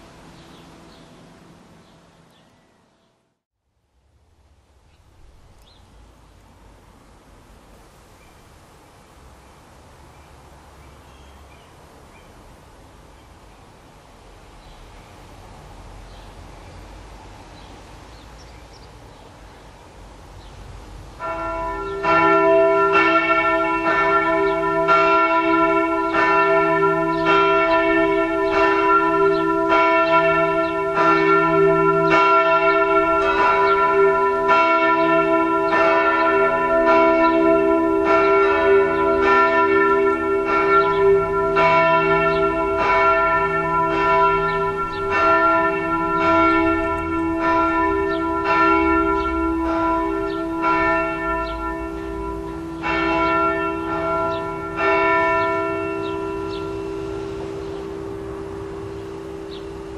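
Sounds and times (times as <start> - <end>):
church bells ringing: 21.2 - 59.9
lower bell tone: 21.3 - 59.9.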